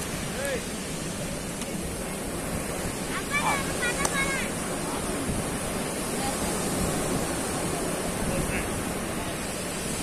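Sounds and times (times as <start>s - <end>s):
sea surf breaking on sand: 0.0s - 10.0s
wind on microphone: 0.0s - 10.0s.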